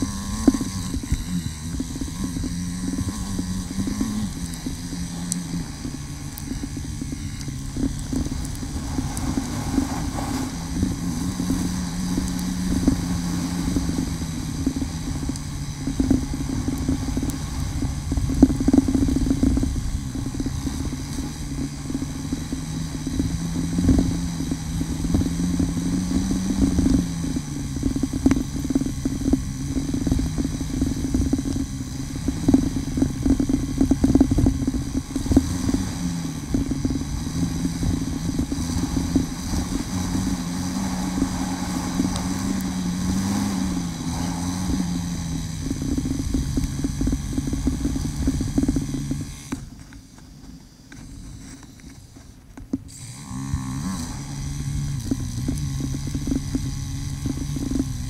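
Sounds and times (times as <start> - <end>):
knocks and clatter from bike: 0.0 - 40.3
motorcycle engine running: 0.0 - 58.0.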